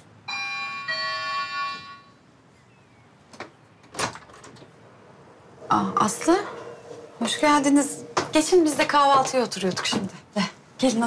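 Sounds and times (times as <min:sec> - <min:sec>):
two-note electronic doorbell chime: 0:00.3 - 0:02.1.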